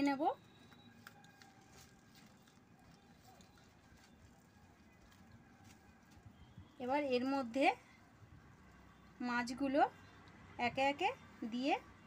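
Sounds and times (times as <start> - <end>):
hand mixing wet paste: 0.0 - 6.8.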